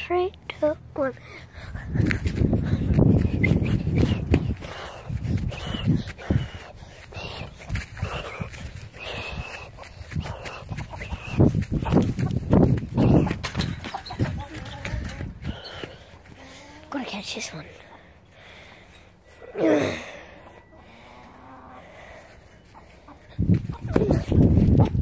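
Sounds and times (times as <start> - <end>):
person breathing hard: 1.2 - 11.6, 15.4 - 16.8, 17.8 - 23.5
wind noise on microphone: 1.5 - 16.0, 23.3 - 25.0.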